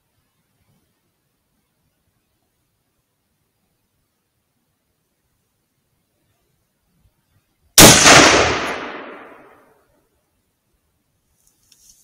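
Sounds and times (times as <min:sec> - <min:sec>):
rifle shot: 0:07.8 - 0:09.7.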